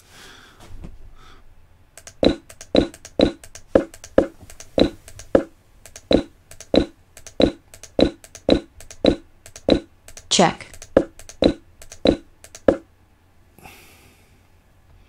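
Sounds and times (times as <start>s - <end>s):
sharp clicks: 2.0s - 12.8s.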